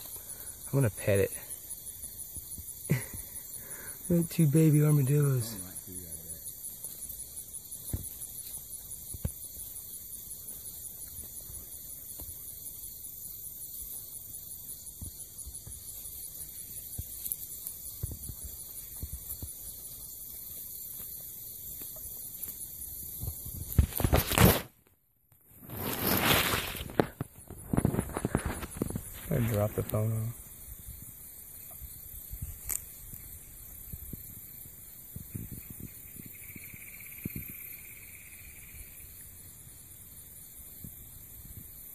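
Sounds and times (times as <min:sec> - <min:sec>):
steady hiss: 0:00.0 - 0:24.8, 0:25.6 - 0:41.9
rustling grass and dry leaves: 0:00.0 - 0:24.9, 0:25.5 - 0:38.1.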